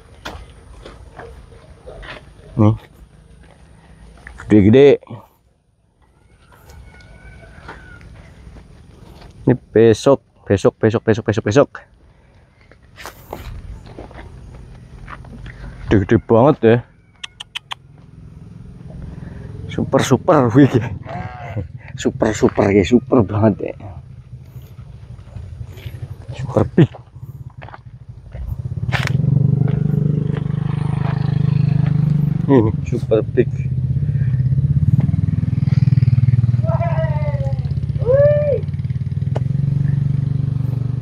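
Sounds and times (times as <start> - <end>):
footsteps on soil: 0.0 - 4.6, 6.3 - 9.5, 11.9 - 16.6, 24.2 - 32.2
small engine running: 17.8 - 32.9.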